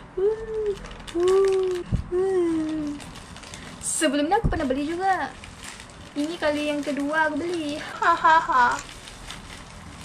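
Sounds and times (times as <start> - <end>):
plastic bag tearing: 0.6 - 10.0.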